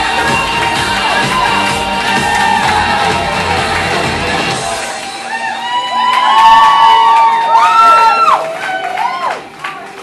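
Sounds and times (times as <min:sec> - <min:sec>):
audience cheering: 0:00.2 - 0:09.8
high-pitched whoops and screams: 0:05.2 - 0:09.4.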